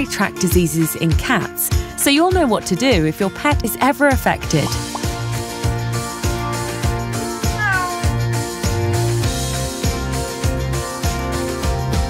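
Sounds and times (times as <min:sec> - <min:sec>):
background music with beat: 0:04.2 - 0:12.0
cat meowing: 0:07.5 - 0:08.3.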